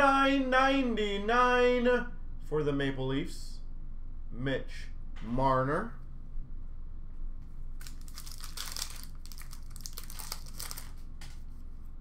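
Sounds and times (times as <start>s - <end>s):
wrapper crinkling: 7.8s - 11.4s.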